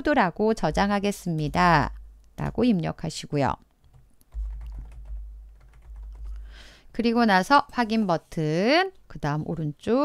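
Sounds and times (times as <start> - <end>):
keyboard typing: 3.8 - 6.5.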